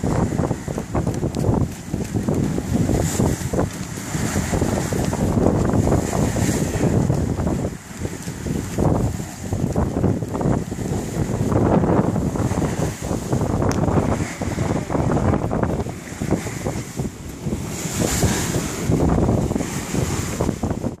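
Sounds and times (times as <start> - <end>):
water rushing past hull: 0.0 - 21.0
wind buffeting microphone: 0.0 - 21.0.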